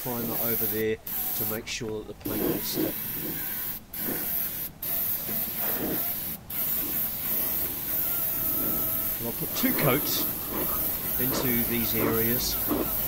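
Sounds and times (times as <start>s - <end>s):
air spray gun hissing: 0.0s - 1.6s, 2.2s - 13.0s.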